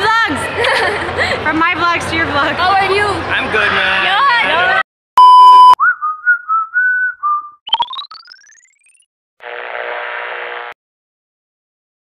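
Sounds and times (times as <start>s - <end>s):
dense buzzing: 9.4s - 10.8s.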